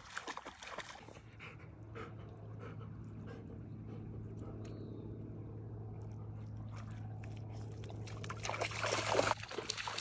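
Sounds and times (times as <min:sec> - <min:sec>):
steady low hum: 0:01.1 - 0:09.5
dog panting: 0:01.2 - 0:04.7.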